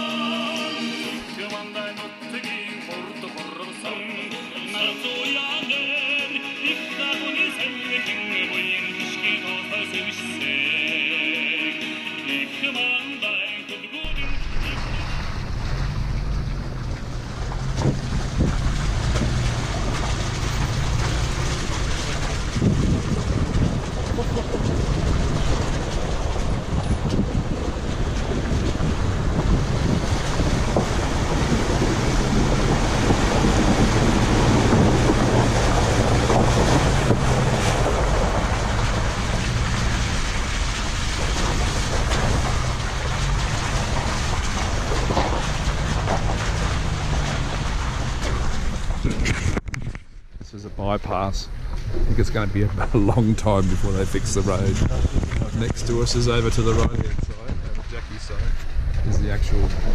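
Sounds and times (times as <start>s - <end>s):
tyres splashing through puddles: 0.0s - 59.9s
wind buffeting microphone: 14.3s - 50.4s, 51.4s - 59.9s.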